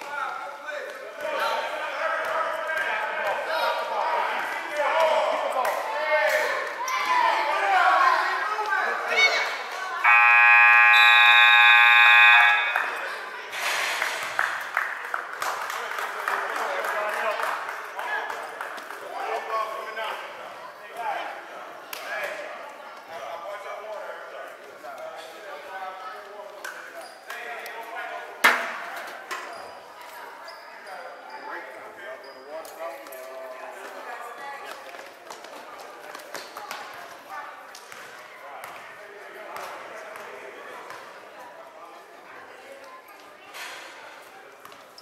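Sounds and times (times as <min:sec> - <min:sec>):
voices: 0:00.0 - 0:13.8
echoing murmur of voices: 0:00.0 - 0:45.0
scoreboard horn blaring: 0:10.0 - 0:13.2.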